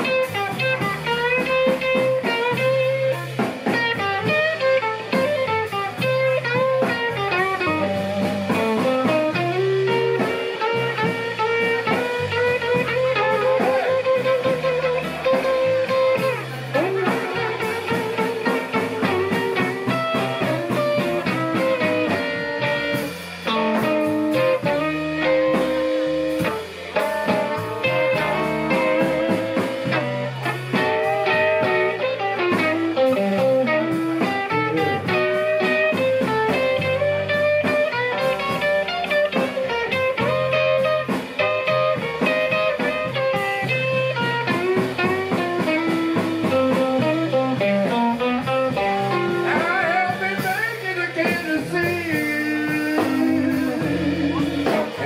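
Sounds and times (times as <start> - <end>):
drums: 0.0 - 55.0
electric guitar solo: 0.0 - 55.0
walking bass line: 0.0 - 55.0.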